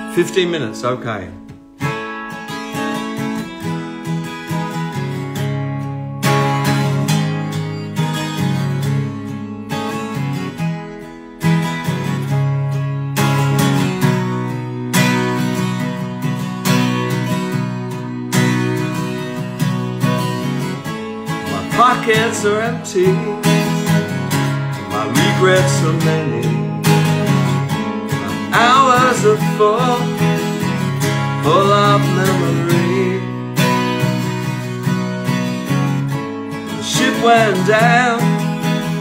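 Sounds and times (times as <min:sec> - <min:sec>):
acoustic guitar strumming: 0:00.0 - 0:39.0.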